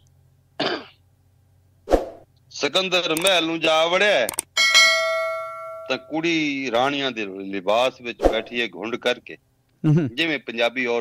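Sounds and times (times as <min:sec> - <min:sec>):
man coughing: 0:00.6 - 0:01.0
sharp click: 0:03.1 - 0:03.4, 0:04.3 - 0:04.5.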